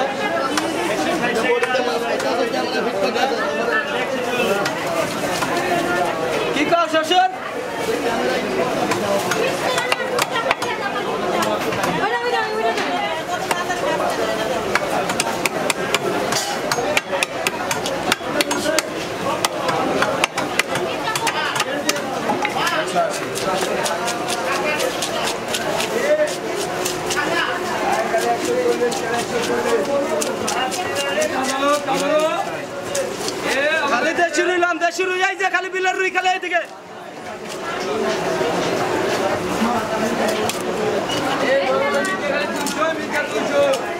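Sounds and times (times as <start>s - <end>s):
chatter of voices: 0.0s - 43.9s
knife scraping fish scales: 23.1s - 32.3s.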